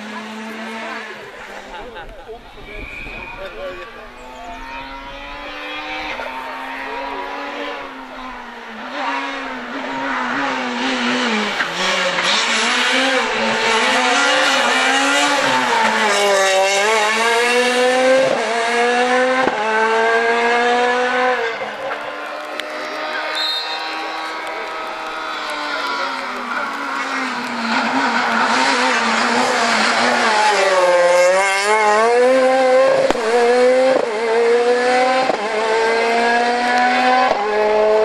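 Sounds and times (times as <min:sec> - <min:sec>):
rally car engine revving past: 0:00.0 - 0:38.0.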